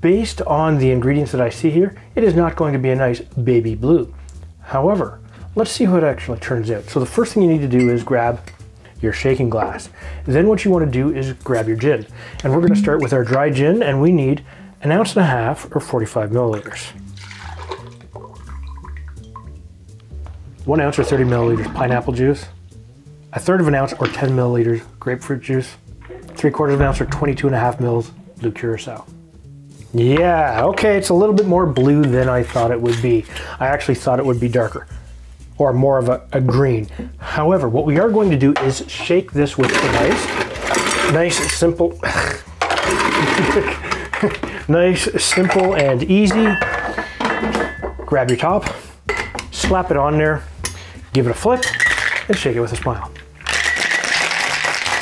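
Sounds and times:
background music with bass line: 0:00.0 - 0:53.6
liquid pouring into glass: 0:17.0 - 0:19.6
ice cubes rattling in bucket: 0:39.6 - 0:41.6, 0:42.6 - 0:44.4, 0:51.7 - 0:52.8, 0:53.4 - 0:55.0.

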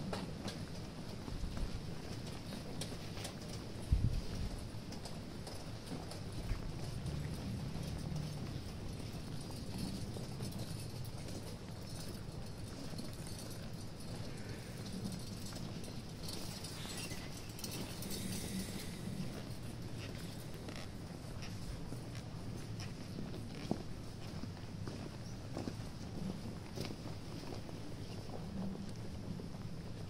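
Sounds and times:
footsteps on paved street: 0:00.0 - 0:30.0.

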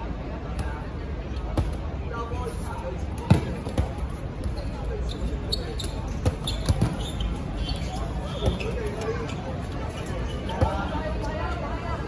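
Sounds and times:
players shouting and chatting: 0:00.0 - 0:12.0
dodgeballs smacking: 0:01.5 - 0:01.9, 0:03.2 - 0:04.6, 0:05.9 - 0:07.0.

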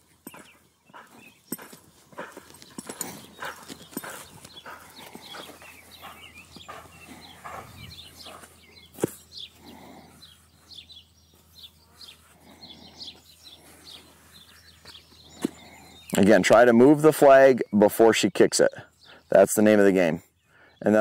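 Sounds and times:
small birds chirping: 0:00.0 - 0:21.0.

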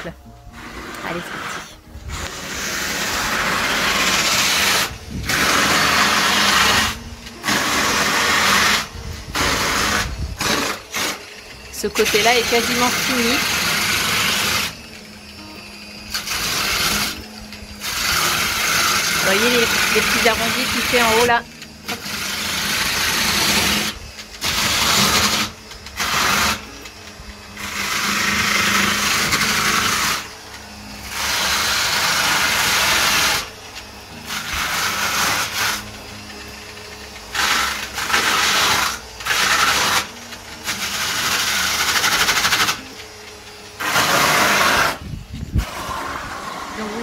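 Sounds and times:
angle grinder abrading foam: 0:00.0 - 0:47.0.

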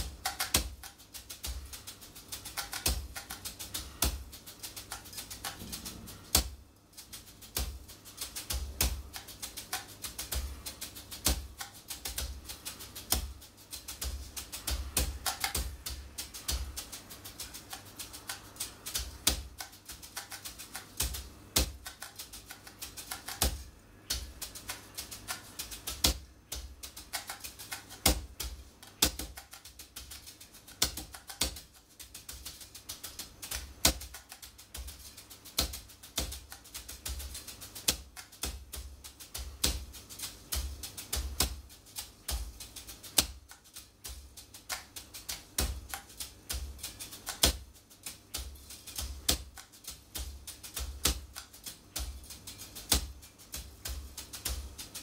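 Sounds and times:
brushes tapping on practice pad: 0:00.0 - 0:55.0.

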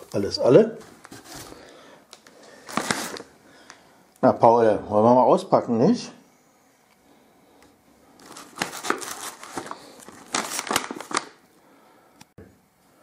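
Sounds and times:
packaging crinkling and rustling: 0:00.0 - 0:03.8, 0:08.2 - 0:11.4.

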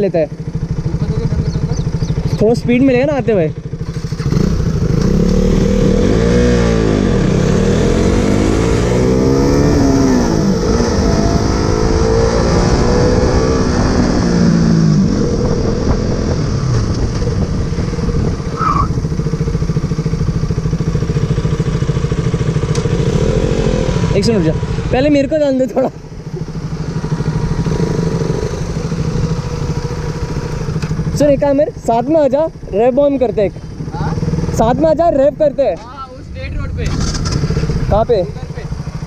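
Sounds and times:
motorcycle engine accelerating: 0:00.0 - 0:39.0.

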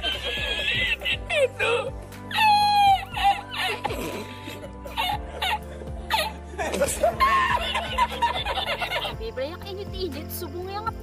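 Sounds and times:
man laughing uncontrollably: 0:00.0 - 0:01.9, 0:03.2 - 0:09.1
background music: 0:00.0 - 0:11.0.

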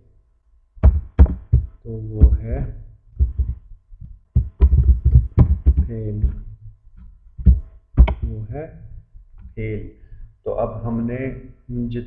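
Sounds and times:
faint electrical hum: 0:00.0 - 0:12.0
keyboard typing taps: 0:07.4 - 0:08.3.

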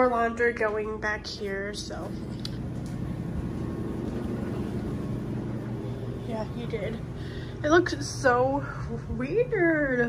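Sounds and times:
laundry machine humming: 0:00.0 - 0:10.0.

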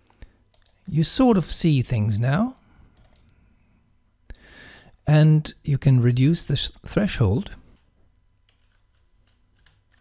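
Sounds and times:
computer keyboard keystrokes: 0:00.5 - 0:00.9, 0:03.0 - 0:03.3, 0:07.8 - 0:10.0.

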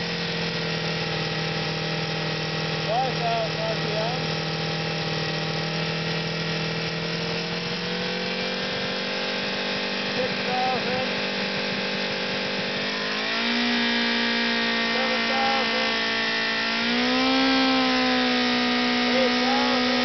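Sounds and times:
motorcycle engine at high revs: 0:00.0 - 0:20.0.

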